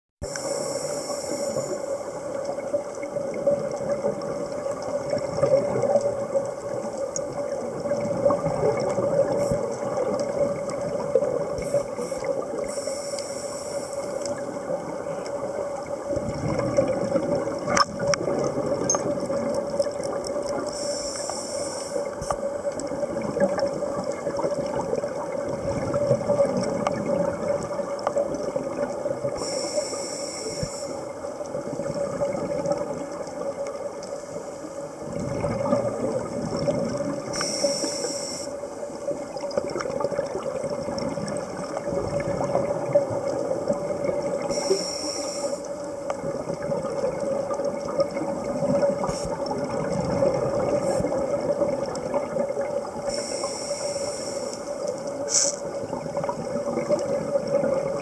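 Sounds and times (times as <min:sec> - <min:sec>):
steady hum: 0:00.2 - 0:02.5, 0:11.4 - 0:15.2, 0:53.1 - 0:55.6
rushing bubbles underwater: 0:01.5 - 0:13.2, 0:14.1 - 0:29.7, 0:30.6 - 0:58.0.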